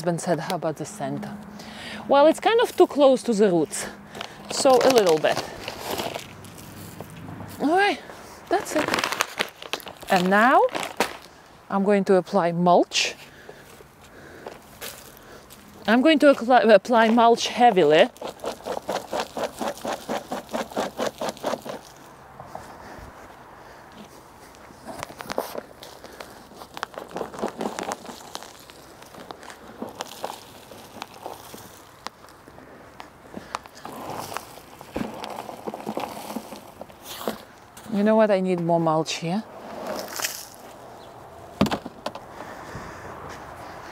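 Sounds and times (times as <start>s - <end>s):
mulch rustling and crackling: 2.4s - 11.5s, 17.3s - 37.9s.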